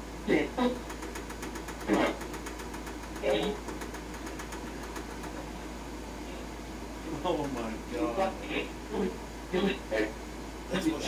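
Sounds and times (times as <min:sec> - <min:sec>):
low electrical hum: 0:00.0 - 0:11.0
rapid even ticking: 0:00.8 - 0:05.5.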